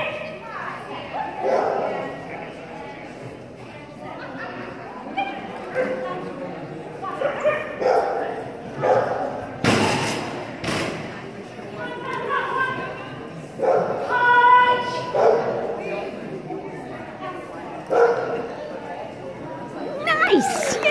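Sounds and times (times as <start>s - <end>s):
voices in a hall: 0.0s - 20.9s
dog barking: 1.4s - 1.9s, 7.2s - 9.3s, 13.6s - 14.0s, 15.1s - 15.6s, 17.9s - 18.4s.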